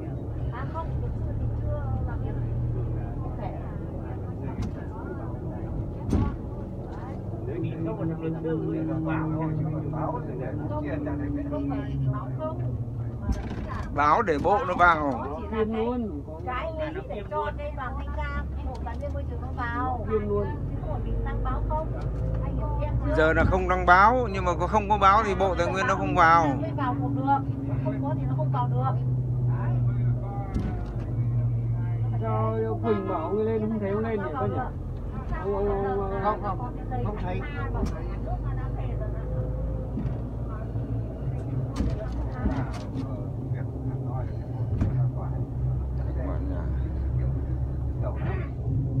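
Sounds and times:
engine and road rumble: 0.0s - 49.0s.

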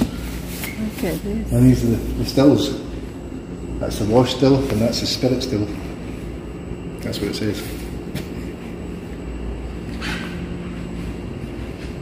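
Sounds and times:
machinery humming: 0.0s - 12.0s.

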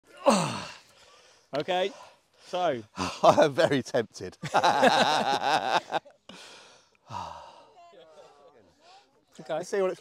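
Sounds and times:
man sighing: 0.2s - 0.8s, 7.1s - 7.6s.

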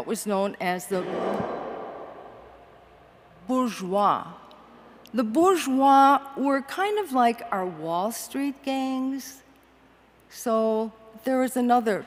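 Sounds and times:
woman's voice reverberating: 3.4s - 9.4s.

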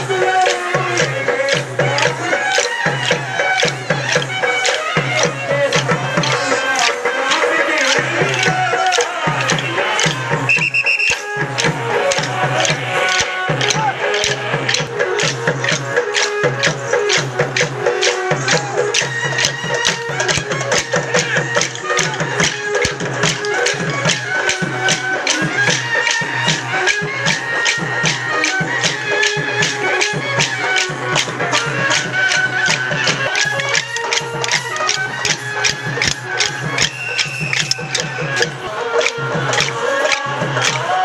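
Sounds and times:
drum beat: 0.0s - 41.0s
held melody line: 0.0s - 41.0s
sticks clicking together: 0.4s - 40.8s.

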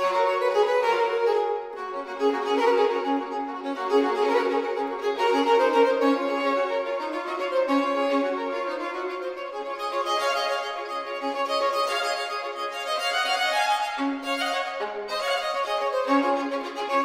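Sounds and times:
baroque violin duet: 0.0s - 17.0s.

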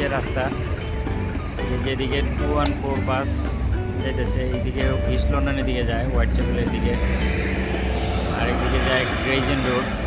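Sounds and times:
bus engine running: 0.0s - 10.0s
street traffic: 0.0s - 10.0s.

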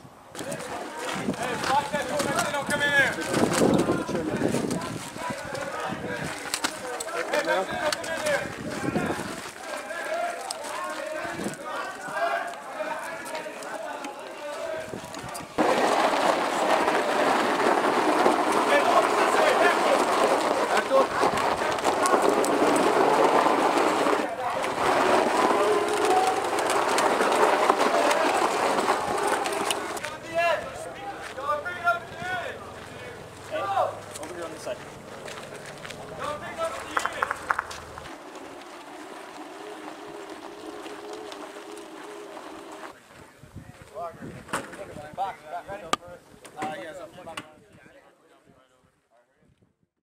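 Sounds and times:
people talking over one another: 0.4s - 38.2s.

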